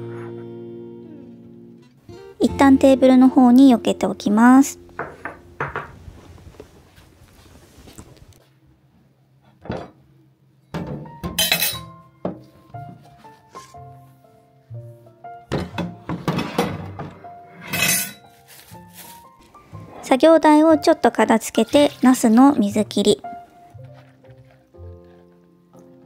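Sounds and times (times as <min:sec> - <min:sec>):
light background music: 0:00.0 - 0:06.3, 0:10.6 - 0:26.0
dishes clattering into metal sink: 0:10.7 - 0:12.4, 0:15.5 - 0:18.2.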